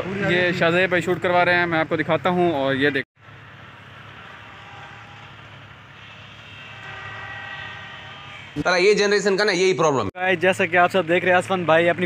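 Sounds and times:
distant engine hum: 3.2s - 8.6s.

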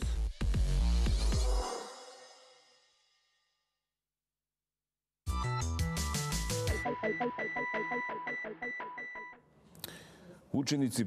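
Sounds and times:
beeping synth jingle: 6.7s - 9.4s.

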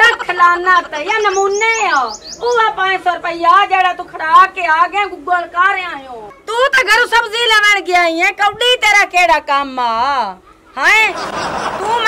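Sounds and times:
woman speaking excitedly: 0.0s - 11.2s, 11.8s - 12.0s.

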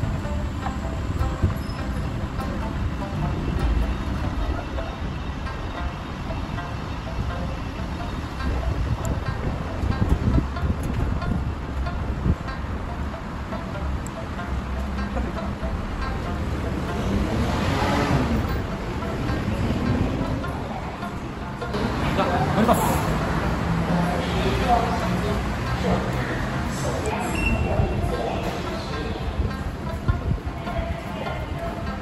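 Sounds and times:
wind on microphone: 0.0s - 14.2s, 25.5s - 32.0s
quiet background music: 0.0s - 32.0s
road traffic rumble: 0.0s - 32.0s.

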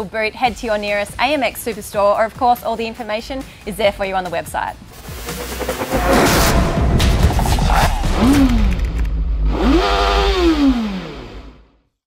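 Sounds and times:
low rumble: 4.9s - 9.6s
motorcycle engine revving: 4.9s - 11.7s.

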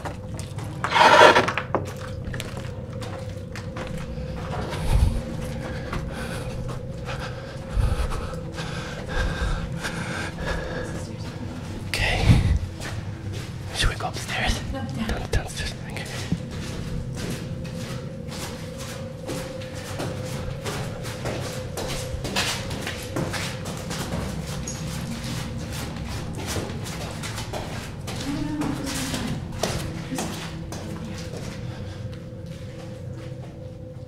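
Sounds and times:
footsteps on concrete stairs: 0.0s - 33.9s
held tone background music: 0.0s - 34.0s.

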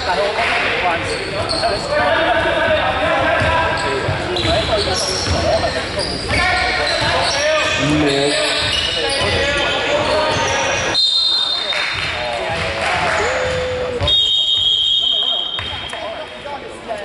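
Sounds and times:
basketball bouncing on court: 3.1s - 7.3s
players calling out: 6.6s - 10.9s.

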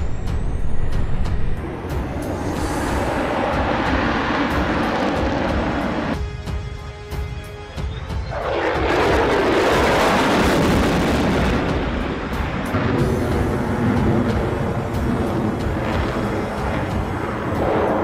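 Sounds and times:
jet engine rush: 0.0s - 6.4s, 8.2s - 18.0s
music with steady beat: 0.0s - 9.3s, 10.5s - 18.0s.

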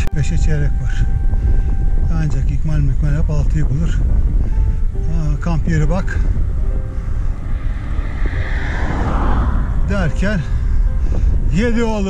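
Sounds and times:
wind buffeting microphone: 0.0s - 12.0s
car passing close: 6.0s - 11.6s.

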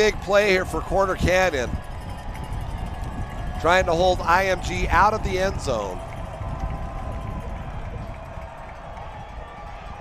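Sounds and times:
stadium crowd rumble: 0.0s - 10.0s.

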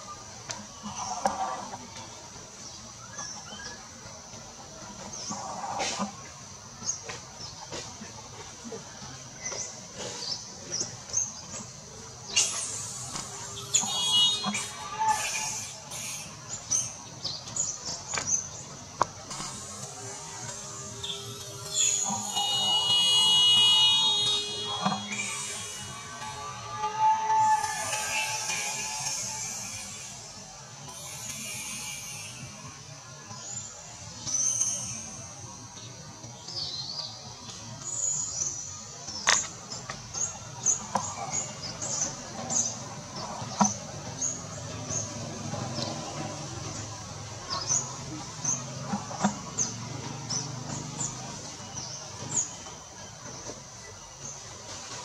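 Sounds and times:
steady high hiss: 0.0s - 55.0s.

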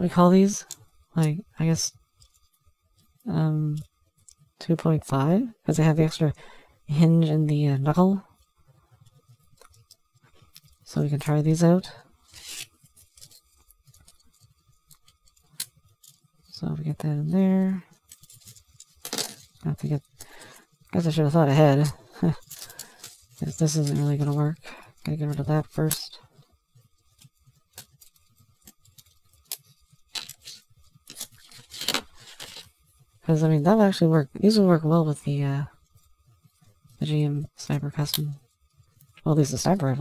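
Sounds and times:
plastic parts scraping: 12.2s - 16.6s, 17.9s - 26.2s, 27.0s - 32.8s.

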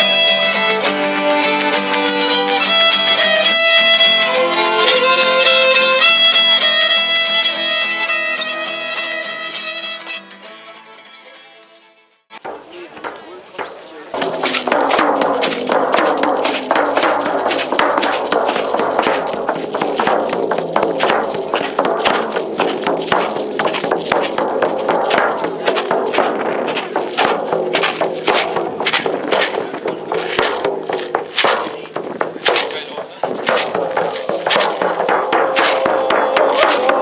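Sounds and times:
frame drums beaten: 12.4s - 37.0s.

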